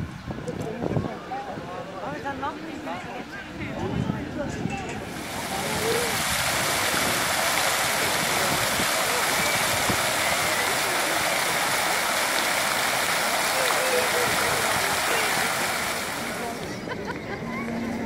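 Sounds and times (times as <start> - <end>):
faint voices: 0.4 - 18.0
fountain water splashing into pool: 5.0 - 17.0.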